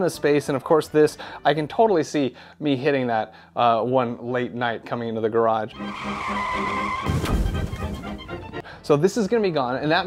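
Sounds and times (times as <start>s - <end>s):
car tyres screeching: 5.7s - 8.5s
crash-like burst: 6.1s - 8.6s.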